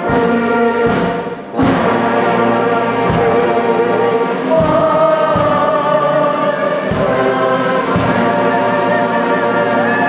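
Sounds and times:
brass band playing: 0:00.0 - 0:10.0
choir singing sustained notes: 0:00.0 - 0:10.0.

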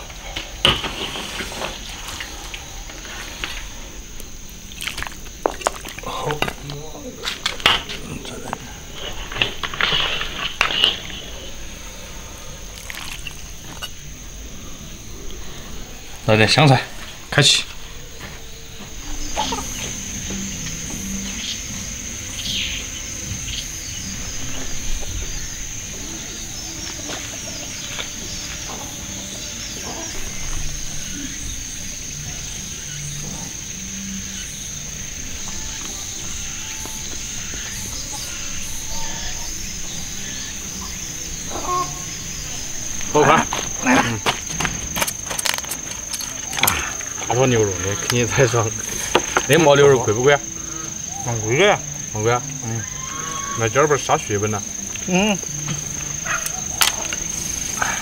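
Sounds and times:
high-pitched insect buzz: 0:00.0 - 0:58.0
men talking: 0:06.0 - 0:09.1, 0:16.2 - 0:17.8, 0:43.0 - 0:44.3, 0:46.7 - 0:50.6, 0:51.2 - 0:52.9, 0:53.6 - 0:55.4.

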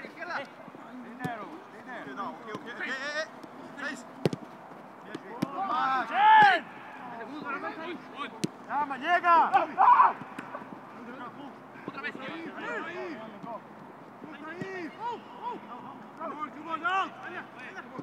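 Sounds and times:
ball being kicked: 0:04.2 - 0:04.5
players shouting: 0:05.1 - 0:13.4, 0:14.3 - 0:18.0.

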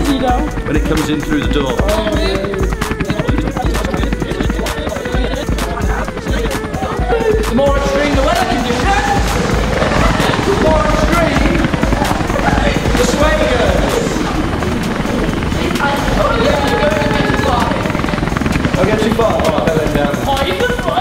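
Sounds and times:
helicopter rotor chopping: 0:00.0 - 0:21.0
voices: 0:00.0 - 0:21.0.

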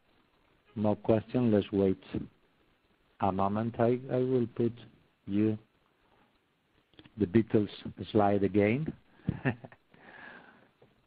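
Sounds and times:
man's breathy laugh: 0:09.1 - 0:10.6
faint breathing: 0:09.9 - 0:10.9.

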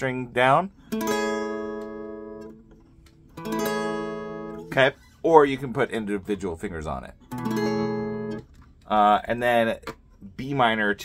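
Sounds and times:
acoustic guitar chord strummed: 0:03.4 - 0:04.8, 0:07.3 - 0:08.4.

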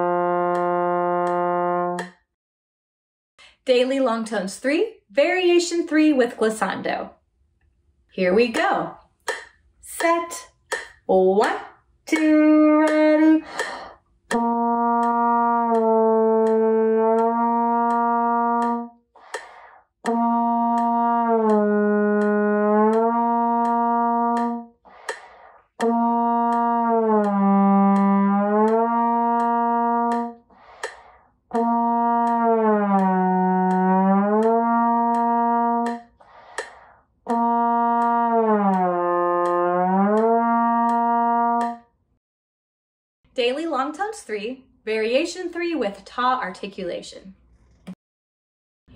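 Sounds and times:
trombone long tones with glissando: 0:00.0 - 0:02.1, 0:14.3 - 0:19.4, 0:20.1 - 0:30.9, 0:31.5 - 0:36.4, 0:37.3 - 0:41.8.

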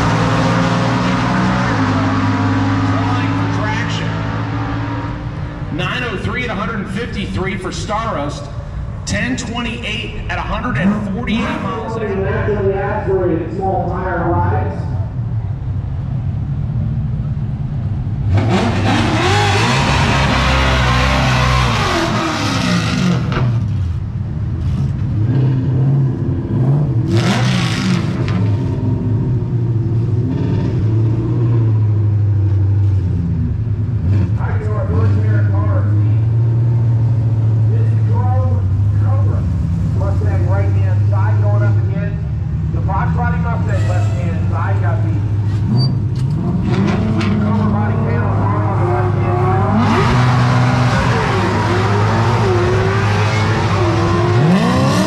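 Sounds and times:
engine revving high: 0:00.0 - 0:05.4, 0:18.2 - 0:23.6, 0:25.2 - 0:29.0, 0:45.6 - 0:55.0
engines idling: 0:00.0 - 0:22.3, 0:28.2 - 0:55.0.

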